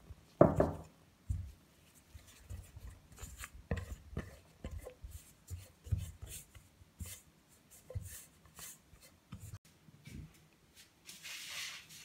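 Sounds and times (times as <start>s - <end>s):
spatula scraping dough in bowl: 2.1s - 9.6s.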